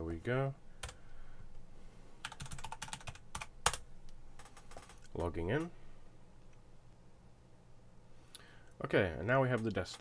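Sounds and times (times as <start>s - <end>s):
keyboard typing: 0.8s - 1.0s, 2.2s - 5.7s.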